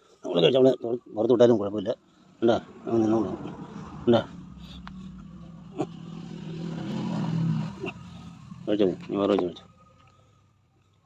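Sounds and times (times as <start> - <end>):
vehicle engine humming: 1.4 - 11.0.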